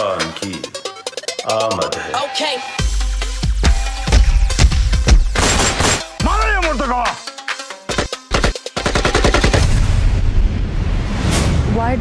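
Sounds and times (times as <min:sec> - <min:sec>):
automatic rifle fire: 0:05.4 - 0:06.1, 0:07.9 - 0:09.8.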